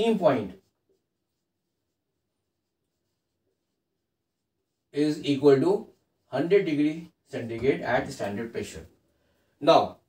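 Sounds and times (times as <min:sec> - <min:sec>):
marker writing on whiteboard: 0:00.0 - 0:08.6.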